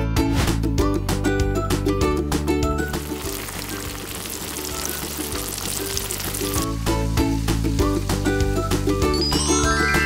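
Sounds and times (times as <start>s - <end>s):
background music: 0.0s - 10.0s
pork deep-frying in hot oil: 2.9s - 9.3s.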